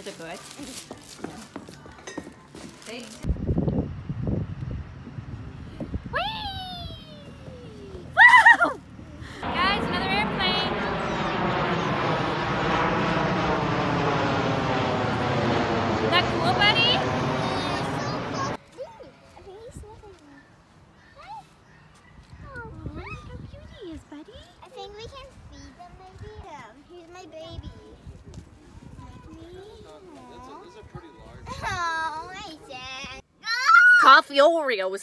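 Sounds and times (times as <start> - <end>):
child squealing: 6.1 - 8.8, 33.4 - 34.2.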